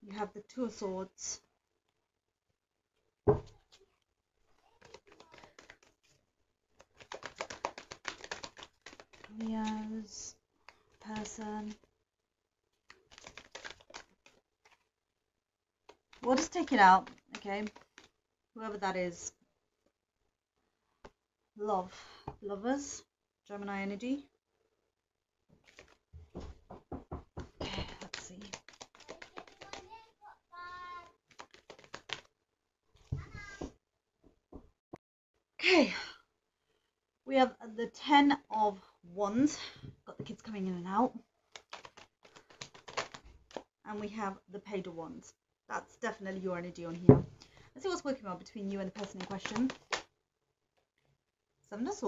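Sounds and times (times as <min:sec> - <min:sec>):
cards being shuffled: 0:04.6 - 0:06.2, 0:06.8 - 0:09.9, 0:12.8 - 0:14.9, 0:15.9 - 0:18.2, 0:25.6 - 0:26.0, 0:27.6 - 0:30.0, 0:31.0 - 0:32.3, 0:41.5 - 0:43.7, 0:48.8 - 0:50.1.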